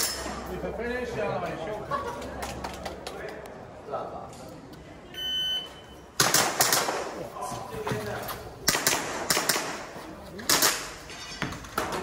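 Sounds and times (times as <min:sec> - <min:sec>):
short high timer beep: 0:05.2 - 0:06.0.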